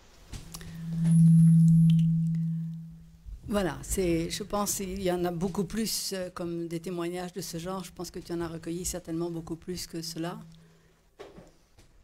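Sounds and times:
steady low tone: 0.5s - 4.6s.

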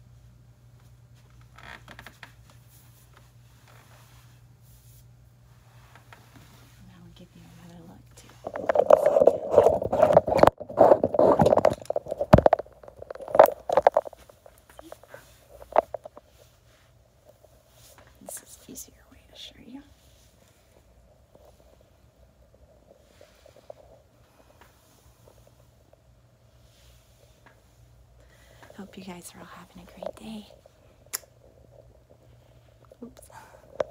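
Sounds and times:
faint steady hum: 0.0s - 33.9s.

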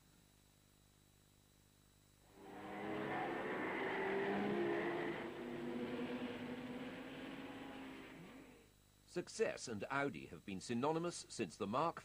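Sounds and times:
racing car engines: 2.3s - 8.7s.

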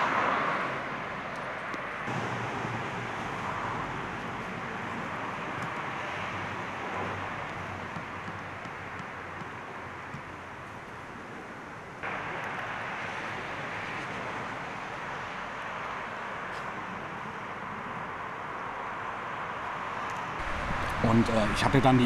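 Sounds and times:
outdoor rushing hiss: 20.4s - 22.0s.

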